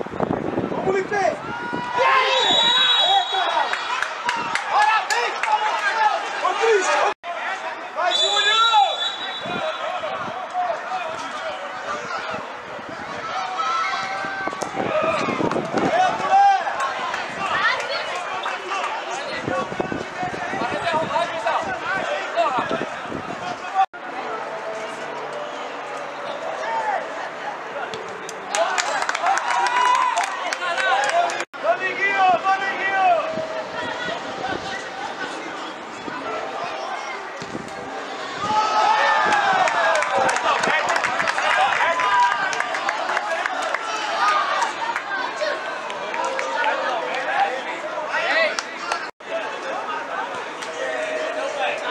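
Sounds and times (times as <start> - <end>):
many voices shouting: 1.4 - 51.9.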